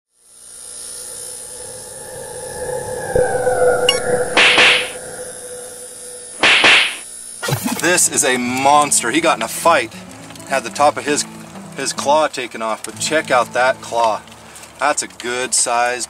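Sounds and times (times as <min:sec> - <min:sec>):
whooshes: 0:01.4 - 0:07.1
held synthetic tones: 0:01.4 - 0:08.5
sharp hit: 0:03.1 - 0:07.9.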